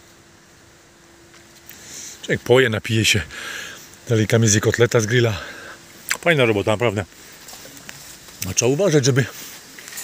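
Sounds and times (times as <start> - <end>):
faint steady hum: 0.0 - 10.0
leaves rustling: 0.0 - 10.0.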